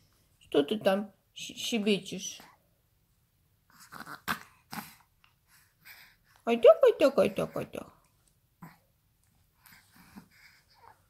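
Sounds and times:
baby huffing and squeaking: 3.7s - 5.0s.

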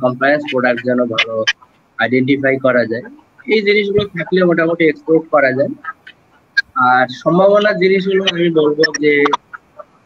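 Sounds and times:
man talking: 0.0s - 5.9s, 6.7s - 9.4s.

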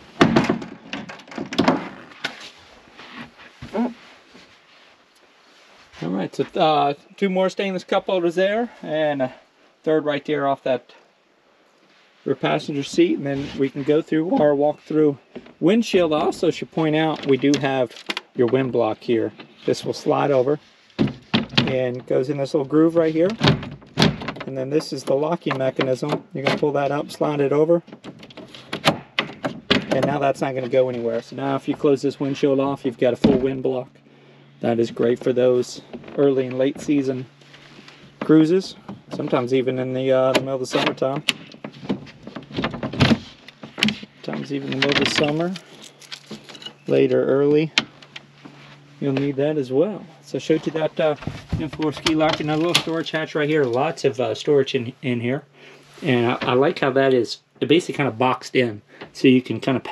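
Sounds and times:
latch clicking and knocking: 27.9s - 30.2s.

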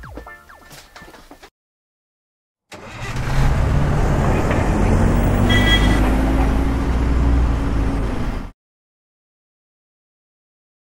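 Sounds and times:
engine running: 2.7s - 8.5s.

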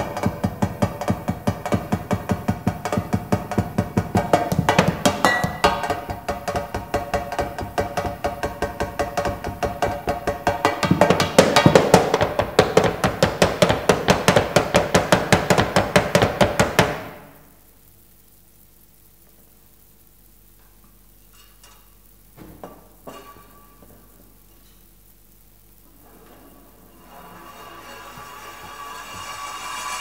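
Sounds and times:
mallets striking metal cans and cymbals: 0.0s - 13.4s, 27.2s - 30.0s.

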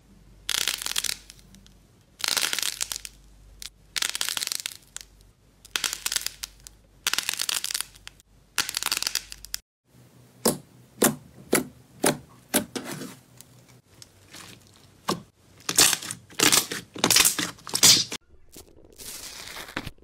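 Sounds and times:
hard shell crunching: 13.9s - 18.2s.

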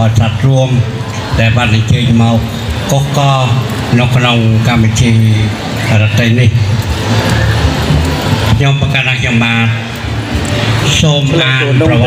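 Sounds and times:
man speaking over loudspeakers: 0.0s - 6.8s, 8.5s - 10.0s, 10.6s - 12.0s.

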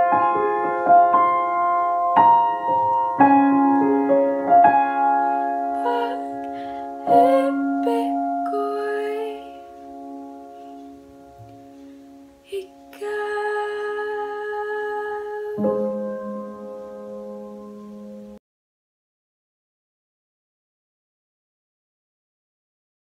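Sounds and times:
piano playing slow chords: 0.0s - 18.4s.

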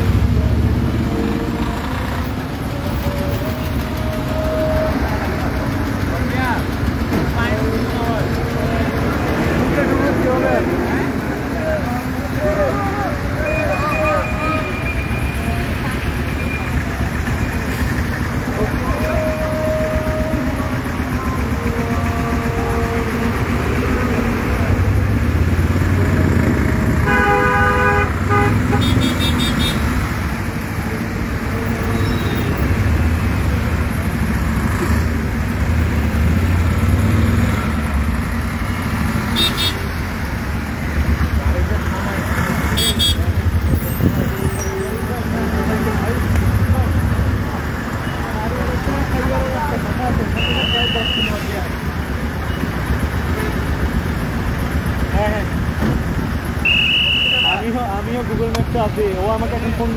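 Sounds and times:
indistinct voices: 0.0s - 27.0s
idling truck and bus engines: 0.0s - 59.9s
vehicle horn: 18.8s - 24.2s, 27.0s - 30.0s, 39.3s - 40.0s, 42.7s - 43.4s, 50.4s - 51.5s, 56.6s - 57.6s.

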